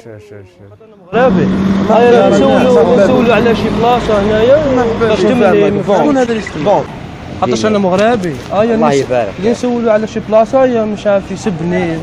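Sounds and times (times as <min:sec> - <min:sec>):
loud talking: 0:00.0 - 0:12.0.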